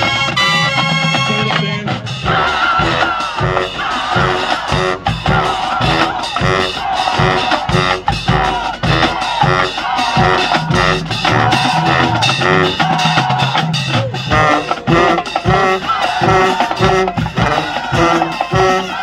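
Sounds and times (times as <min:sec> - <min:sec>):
marching band playing: 0:00.0 - 0:19.0.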